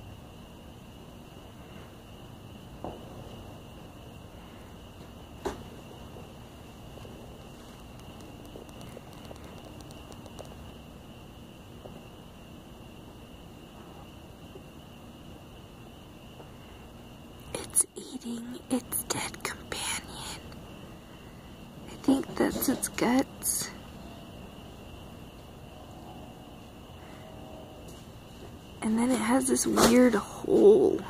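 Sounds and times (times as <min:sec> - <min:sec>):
steady hiss: 0:00.0 - 0:31.0
faint ticks: 0:07.0 - 0:10.8.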